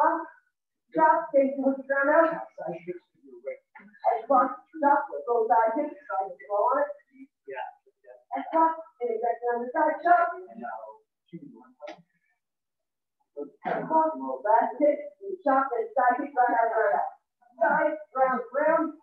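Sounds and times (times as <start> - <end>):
person talking: 13.4 - 19.0.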